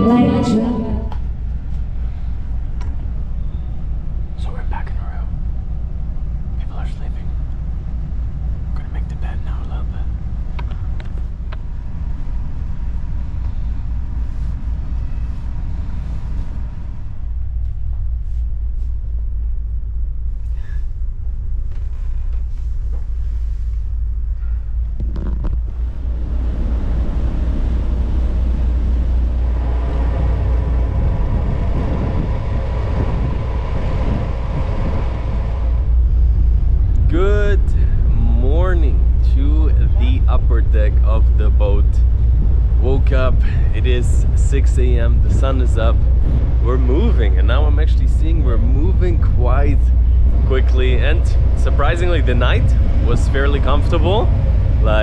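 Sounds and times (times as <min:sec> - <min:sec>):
ship engines rumbling: 0:00.0 - 0:55.0.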